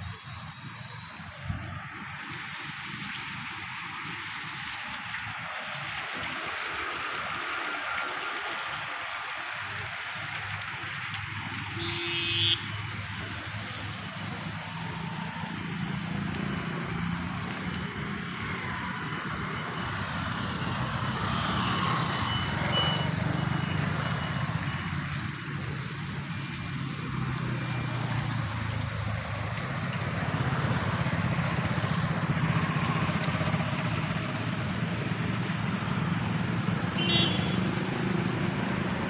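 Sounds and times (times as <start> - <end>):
road traffic drone: 0.0 - 39.0.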